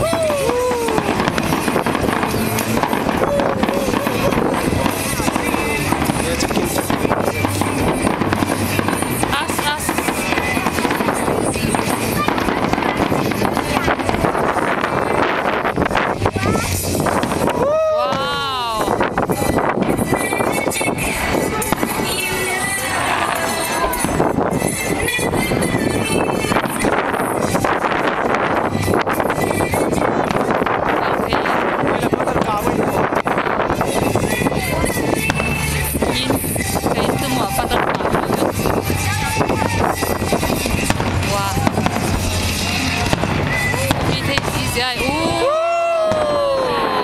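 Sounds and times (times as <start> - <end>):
fireworks bangs and crackling: 0.0 - 47.0
onlookers' voices: 0.0 - 47.0.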